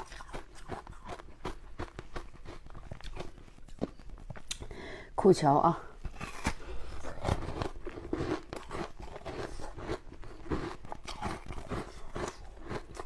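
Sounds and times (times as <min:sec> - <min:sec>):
ice being bitten and chewed: 0:00.0 - 0:04.7, 0:06.0 - 0:13.0.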